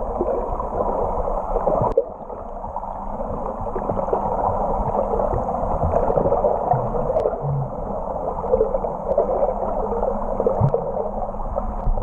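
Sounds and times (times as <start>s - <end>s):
muffled underwater rushing: 0.0s - 12.0s.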